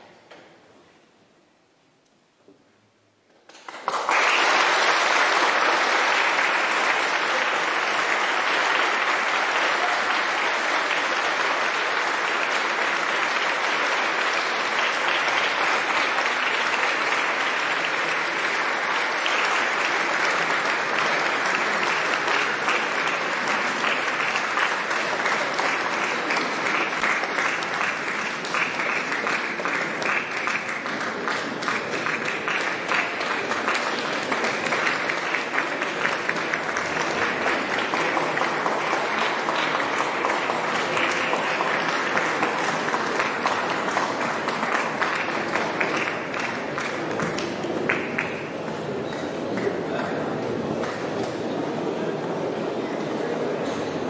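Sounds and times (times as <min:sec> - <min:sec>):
audience applause: 0:03.4 - 0:54.0.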